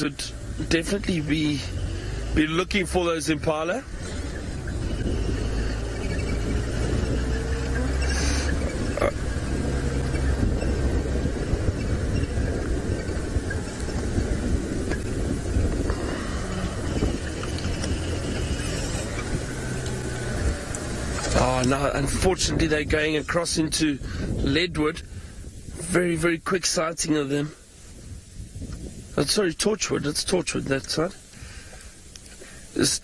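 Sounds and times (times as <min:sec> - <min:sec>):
vehicle engine drone: 0:00.0 - 0:26.6
road rumble: 0:00.0 - 0:33.0.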